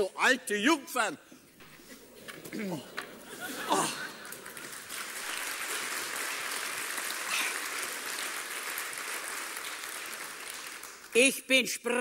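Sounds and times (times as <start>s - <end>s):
audience applauding: 2.0s - 11.2s.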